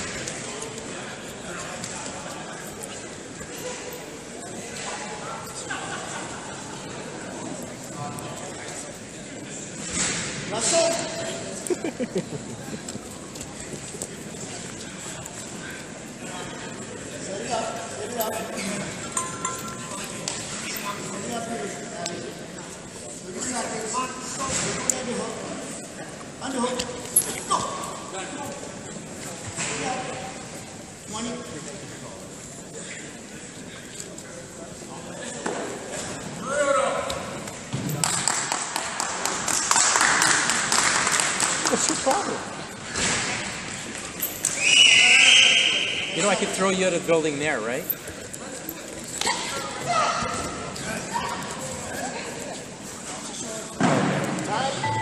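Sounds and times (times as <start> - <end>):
indistinct voices in echoing hall: 0.0 - 55.0
people laughing: 5.5 - 6.9, 11.3 - 14.0, 41.5 - 42.4.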